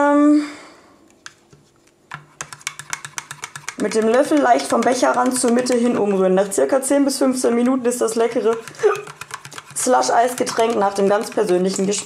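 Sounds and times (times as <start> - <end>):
plastic spoon scraping in cup: 1.6 - 6.6, 7.5 - 12.0.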